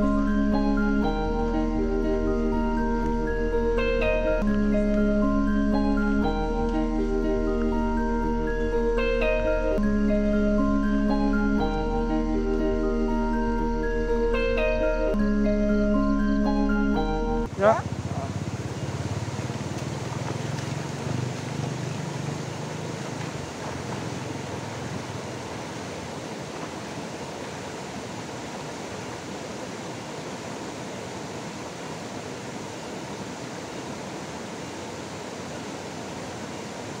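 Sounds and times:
river rushing over stones: 17.5s - 37.0s.

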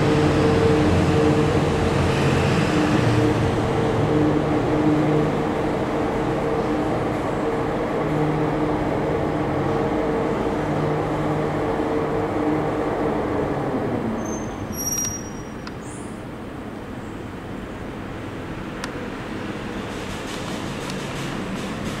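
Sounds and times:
funicular car rumbling on track: 0.0s - 22.0s
high squeal: 14.2s - 16.0s
click: 15.0s - 15.8s.

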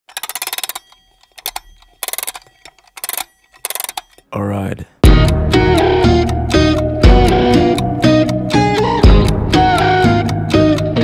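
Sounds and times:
rapid rattling clicks: 0.0s - 4.2s.

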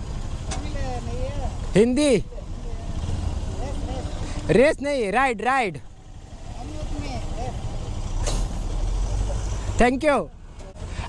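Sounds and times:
motorcycle engines idling: 0.0s - 11.0s
brief hiss: 8.2s - 8.8s.

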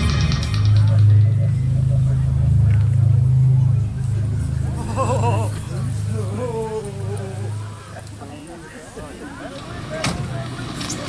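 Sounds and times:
loud low drone: 0.0s - 7.9s
faint indistinct voices: 0.0s - 11.0s.

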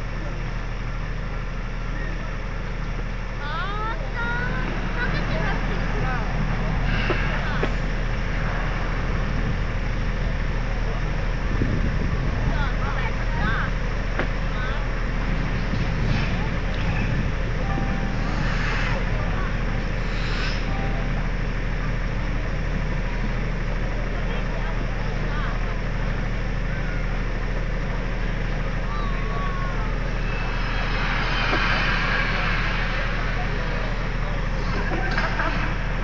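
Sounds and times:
faint crowd voices: 0.0s - 36.0s
steady low hum: 0.0s - 36.0s.

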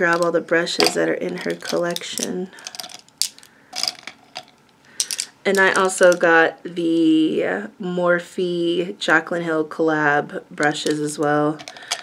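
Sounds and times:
plastic packaging clicking and rustling: 0.0s - 6.2s.

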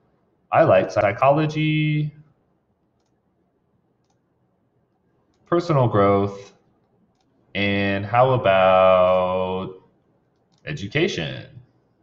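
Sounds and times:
person speaking: 0.5s - 2.2s, 5.5s - 6.6s, 7.6s - 9.8s, 10.6s - 11.7s
computer mouse clicks: 3.0s - 3.2s, 4.0s - 4.2s, 5.3s - 5.5s, 6.5s - 7.4s, 10.3s - 10.7s.

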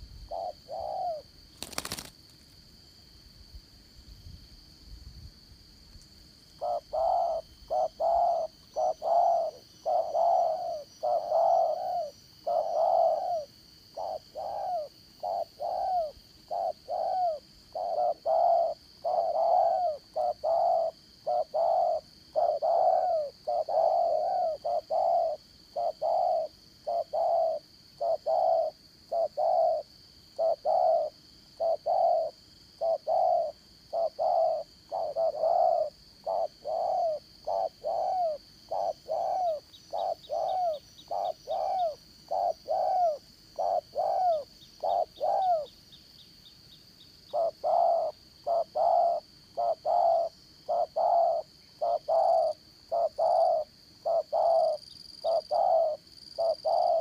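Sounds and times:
doves cooing: 0.0s - 2.1s, 6.6s - 45.7s, 47.3s - 57.0s.

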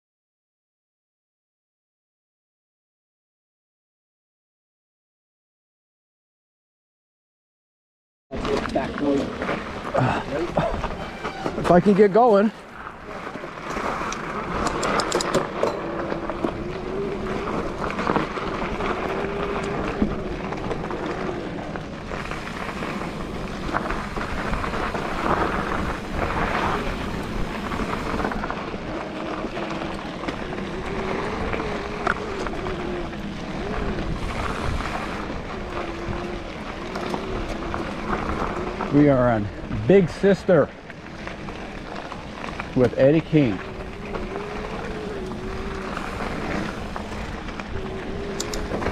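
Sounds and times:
tyre noise on gravel: 8.3s - 48.9s
wind on microphone: 13.0s - 40.0s, 41.2s - 48.9s
bike knocks and rattles: 13.5s - 16.7s.

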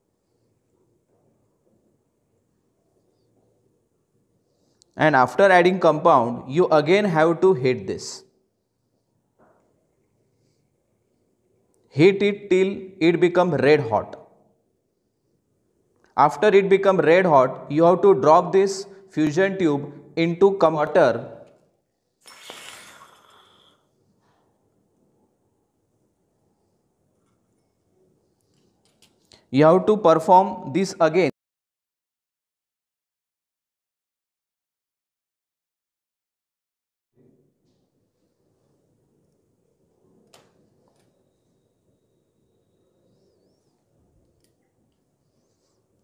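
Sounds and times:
hot glass hissing in water: 22.2s - 23.8s.

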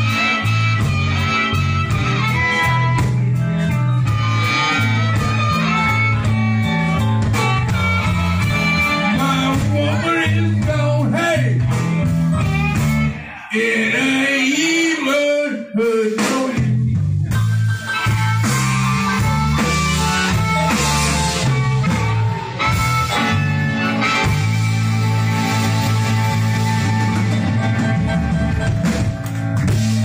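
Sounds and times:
amplified harmonica: 0.0s - 14.4s, 17.4s - 30.0s
electric blues band: 0.0s - 30.0s.

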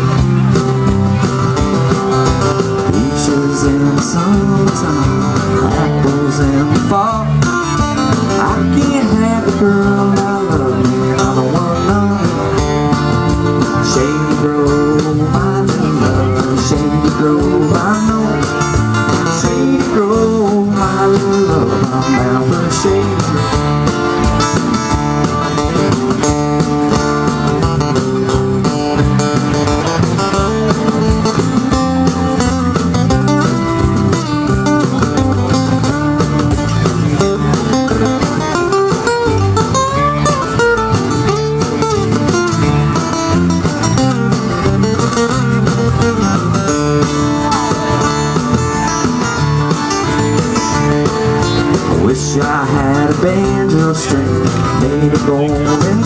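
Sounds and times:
lead guitar melody: 0.0s - 56.0s
live band instrumental: 0.0s - 56.0s.

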